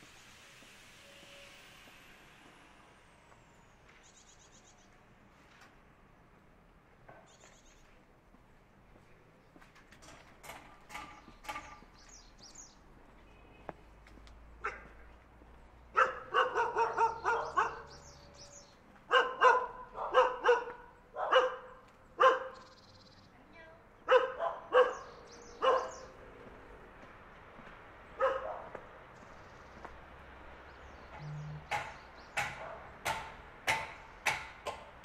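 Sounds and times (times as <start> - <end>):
dog barking: 14.6 - 15.0, 15.9 - 18.0, 19.1 - 22.6, 24.0 - 26.1, 28.2 - 28.8, 32.4 - 32.9.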